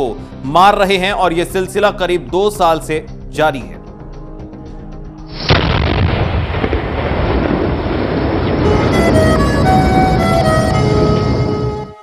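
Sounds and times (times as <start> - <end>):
explosion rumble: 5.3 - 11.9
music with held string notes: 8.7 - 12.0.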